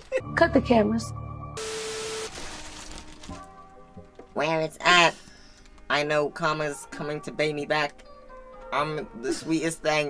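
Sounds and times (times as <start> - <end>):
faint background music: 0.0 - 10.0
static hiss burst: 1.6 - 2.6.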